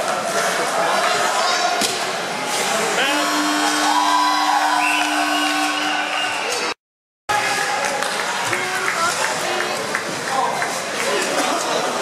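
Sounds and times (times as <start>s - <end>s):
long held tone: 3.0s - 6.8s.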